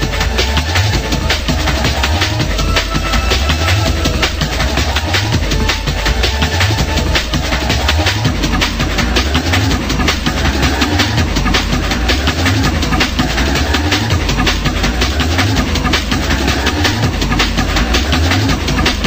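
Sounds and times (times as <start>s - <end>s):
fast techno music: 0.0s - 19.0s.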